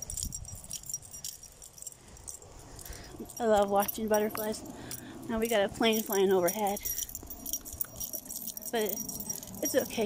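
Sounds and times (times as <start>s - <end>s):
dog tag and leash clip jingling: 0.0s - 10.0s.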